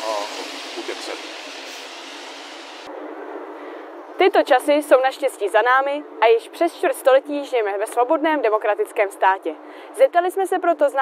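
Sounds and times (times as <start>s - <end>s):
city street background noise: 0.0s - 11.0s.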